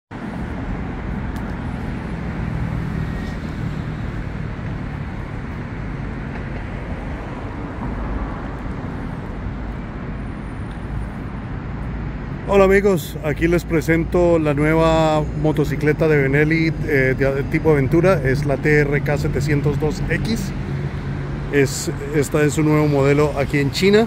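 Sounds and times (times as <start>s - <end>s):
motor vehicle rumble: 0.1s - 24.0s
outdoor background noise: 0.1s - 24.0s.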